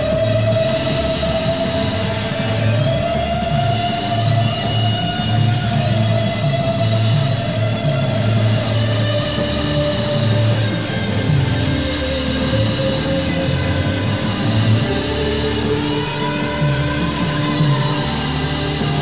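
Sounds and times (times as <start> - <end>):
bass guitar figure: 0.0 - 19.0.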